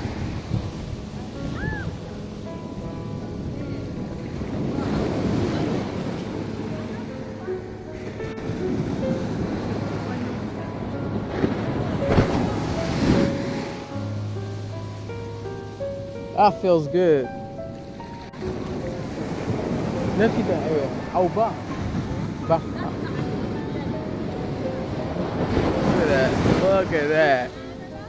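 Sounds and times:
background music: 0.0s - 28.0s
ocean surf breaking: 0.0s - 28.0s.

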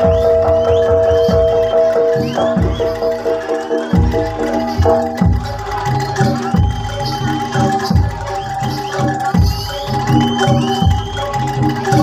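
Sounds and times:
drum strikes: 0.0s - 12.0s.

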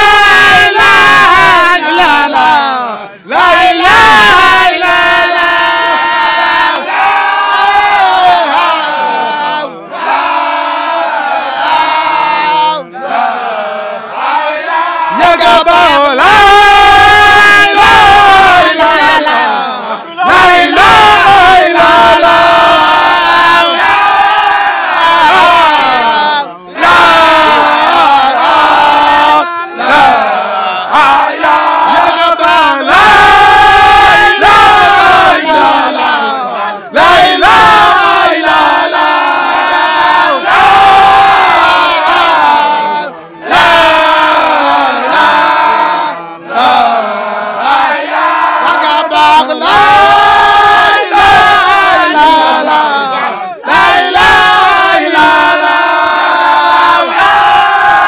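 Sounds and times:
men chanting: 0.0s - 58.0s.

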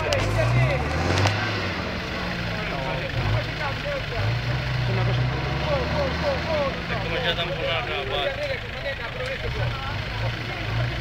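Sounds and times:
spectators' voices: 0.0s - 11.0s
truck engine revving: 0.0s - 11.0s.

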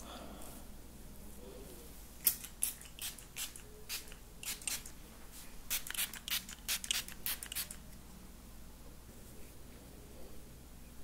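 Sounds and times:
spray bottle hissy sprays: 5.7s - 7.8s.

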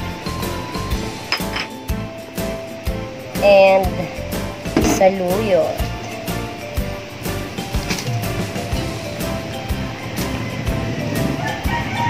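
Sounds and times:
background music with held notes: 0.0s - 12.0s
utensil clinking on metal pot: 1.3s - 1.8s.

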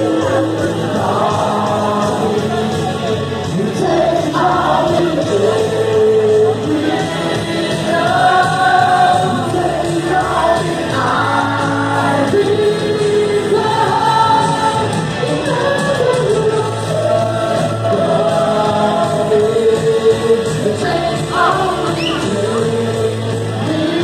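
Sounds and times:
bass guitar: 0.0s - 24.0s
drums: 0.0s - 24.0s
person singing: 0.0s - 24.0s.

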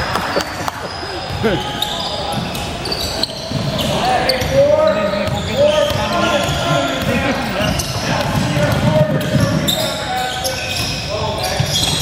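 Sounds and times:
shoe squeaks: 0.2s - 12.0s
basketball bouncing on court: 3.3s - 10.0s.

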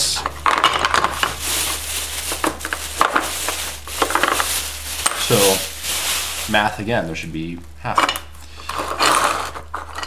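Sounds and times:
plastic bag crinkling: 0.7s - 7.1s.

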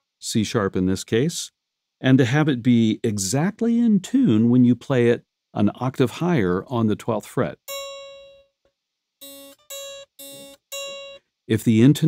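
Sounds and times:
electric guitar notes: 7.7s - 8.5s, 9.2s - 11.2s.

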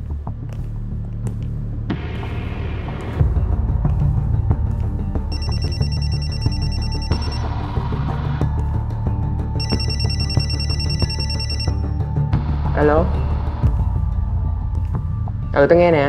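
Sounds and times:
low background music: 0.0s - 16.0s
mobile phone ringing: 5.3s - 7.5s, 9.6s - 12.0s.

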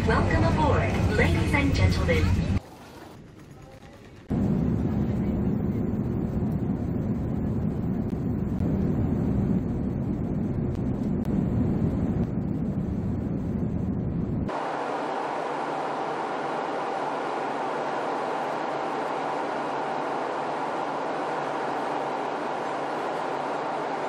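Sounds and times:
airliner cabin engine rumble: 3.2s - 24.0s.

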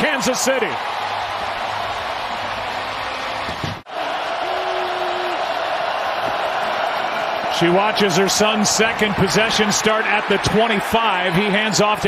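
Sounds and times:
stadium crowd cheering: 0.0s - 12.0s.

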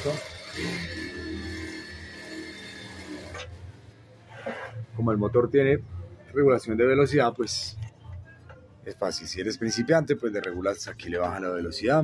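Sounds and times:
sewing machine whine: 0.0s - 4.0s.

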